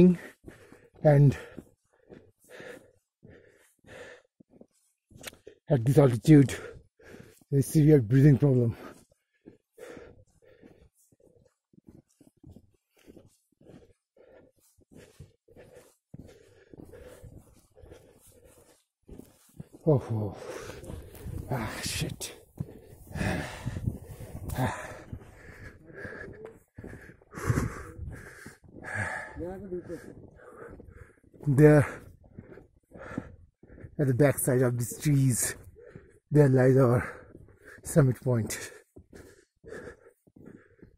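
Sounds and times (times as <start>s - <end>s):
man panting: 0.0s - 5.7s, 6.4s - 40.9s.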